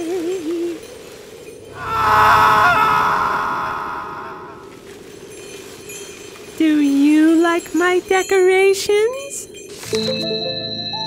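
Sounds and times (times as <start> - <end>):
cartoon character screaming: 1.8 - 4.6.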